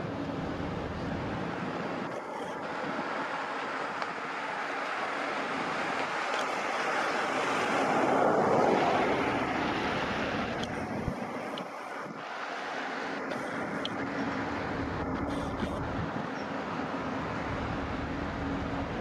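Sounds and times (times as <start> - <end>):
vehicle passing by: 2.6 - 19.0.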